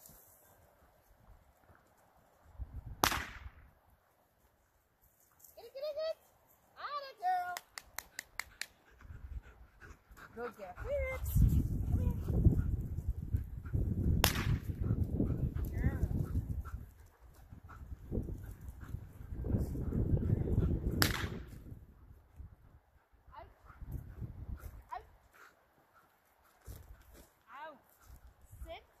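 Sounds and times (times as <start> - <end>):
gunshot cracks: 3.0 - 3.6, 14.2 - 14.6, 21.0 - 21.5.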